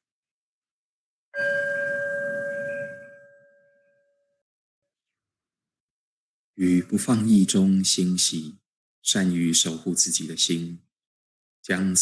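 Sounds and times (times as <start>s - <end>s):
singing bowl ringing: 1.4s - 4.4s.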